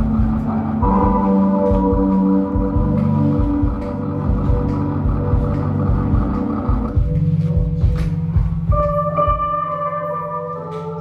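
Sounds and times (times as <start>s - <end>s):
held keyboard chord: 0.0s - 11.0s
pulsing bass: 0.0s - 11.0s.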